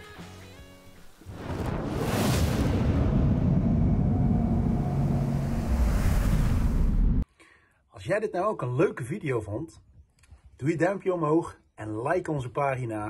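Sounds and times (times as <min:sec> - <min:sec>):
fire whoosh and rumble: 0:01.3 - 0:07.2.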